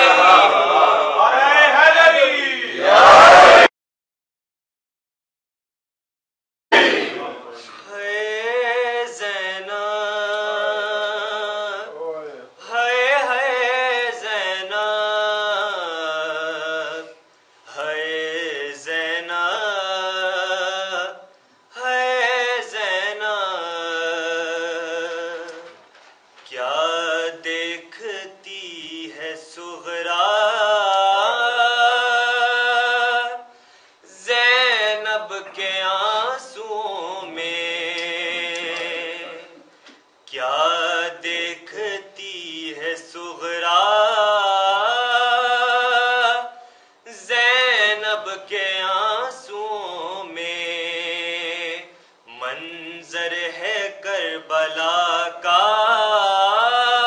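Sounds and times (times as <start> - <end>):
man chanting: 7.2 - 25.8, 26.5 - 39.7, 40.3 - 57.0.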